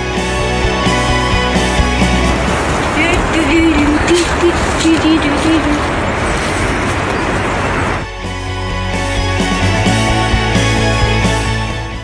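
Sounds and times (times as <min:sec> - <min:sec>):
music: 0:00.0 - 0:06.0, 0:08.0 - 0:12.0
loud rushing noise: 0:01.6 - 0:08.1.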